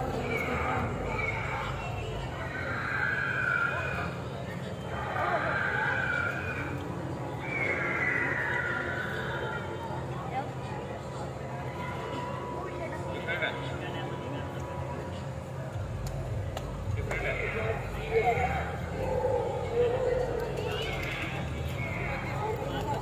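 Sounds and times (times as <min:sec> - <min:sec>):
high whinny-like cry: 0:04.8 - 0:09.7.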